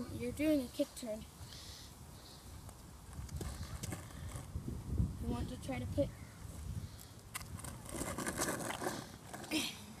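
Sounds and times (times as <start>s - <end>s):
skateboard wheels rumbling on asphalt: 3.0s - 6.0s, 6.6s - 9.8s.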